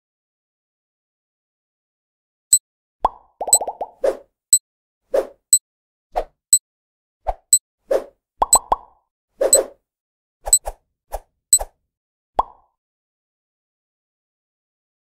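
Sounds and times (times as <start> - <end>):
cartoon plops and pops: 3.0 - 4.0, 8.4 - 8.9, 12.4 - 12.6.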